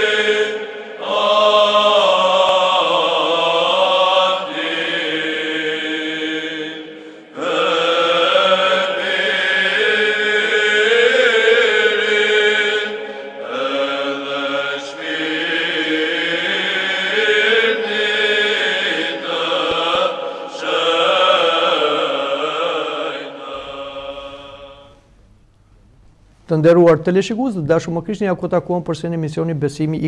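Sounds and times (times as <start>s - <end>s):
voices chanting long notes: 0.0s - 25.1s.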